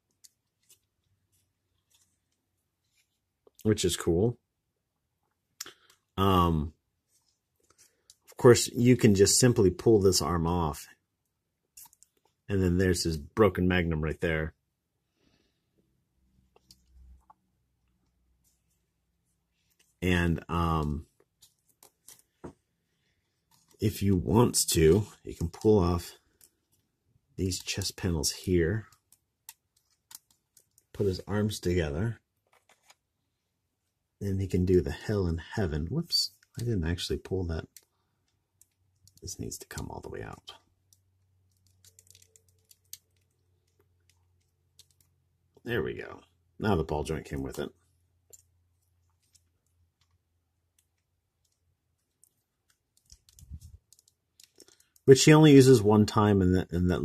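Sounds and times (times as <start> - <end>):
plastic model parts clicking: 40.9 - 45.1, 48.3 - 55.1.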